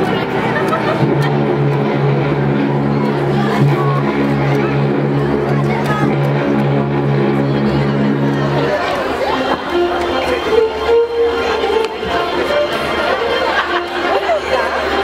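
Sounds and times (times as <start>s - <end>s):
crowd chatter: 0.0s - 15.0s
music: 0.0s - 15.0s
steady low held note: 0.0s - 15.0s.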